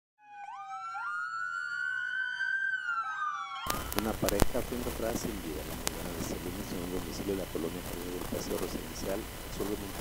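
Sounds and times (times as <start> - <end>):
two-tone police siren: 0.2 - 4.2.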